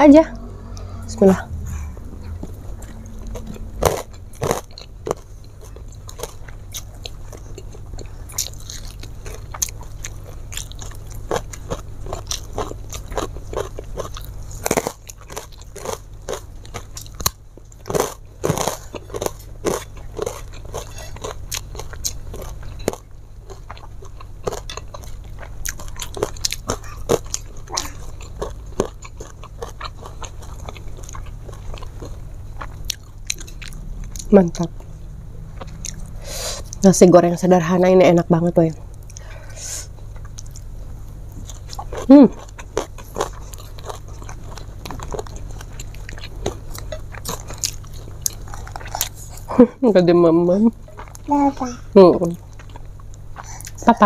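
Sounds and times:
steady low hum: 0.0 - 54.0
person chewing crunchy food: 0.5 - 36.9, 38.8 - 49.6, 50.8 - 51.3, 52.4 - 53.9.

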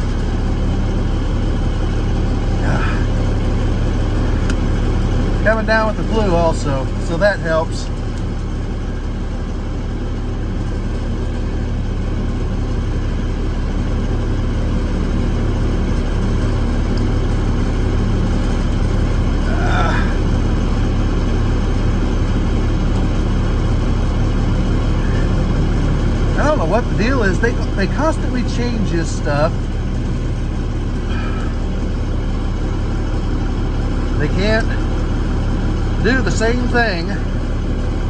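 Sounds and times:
truck engine idling: 0.0 - 38.0.

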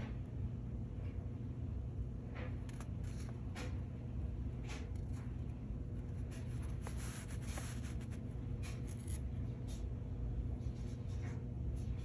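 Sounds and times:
low steady hum: 0.0 - 12.0
scratchy rustling: 4.7 - 9.3.

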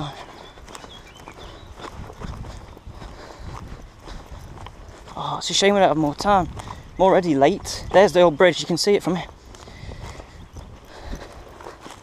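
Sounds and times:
crunching of dry twigs underfoot: 0.0 - 12.0.

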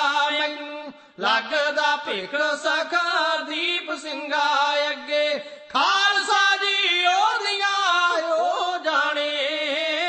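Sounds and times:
man singing chant-like melody: 0.0 - 10.0.

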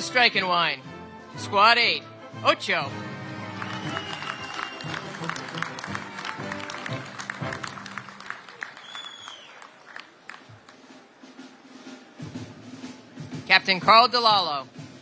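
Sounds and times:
background music: 0.0 - 15.0
audience applause: 3.2 - 11.5.

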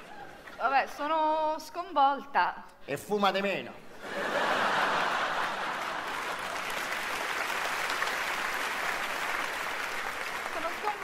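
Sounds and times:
audience applauding: 4.6 - 11.0.

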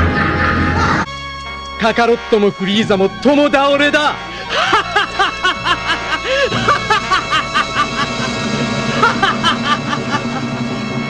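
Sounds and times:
background music: 0.0 - 11.0
man laughing evilly: 4.2 - 10.8.

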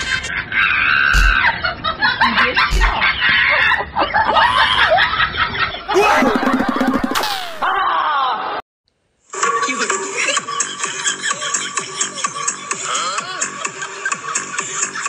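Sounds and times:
laughter: 1.2 - 7.0, 7.6 - 8.6, 10.6 - 12.3, 12.9 - 15.0
high-pitched voice sounds: 6.0 - 7.8
noisy sweep: 6.0 - 7.8.

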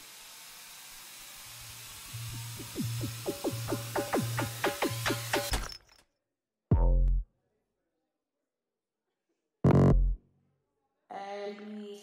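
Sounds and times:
hissing noise: 2.1 - 5.5
electronic club music: 2.6 - 5.5.

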